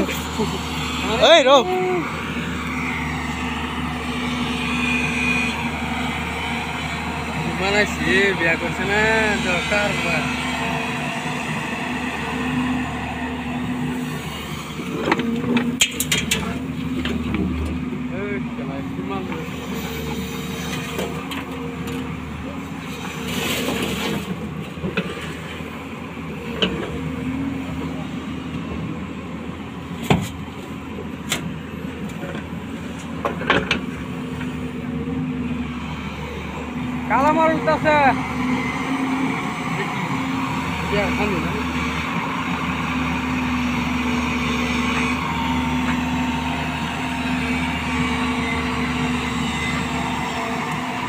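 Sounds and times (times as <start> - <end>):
excavator diesel engine: 0.0 - 51.0.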